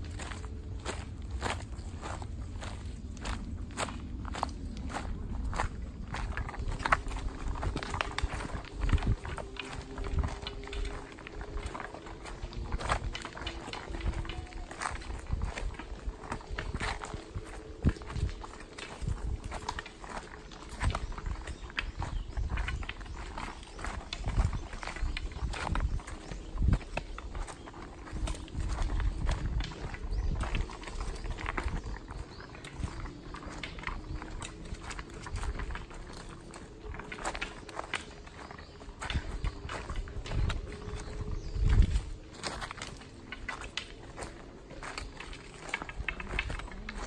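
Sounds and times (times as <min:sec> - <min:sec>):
footsteps on rocky trail: 0:00.0 - 0:47.0.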